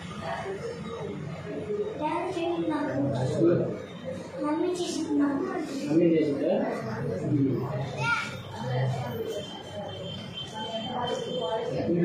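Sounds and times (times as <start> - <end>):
child talking: 2.0 - 3.3, 4.4 - 5.9, 7.9 - 8.5.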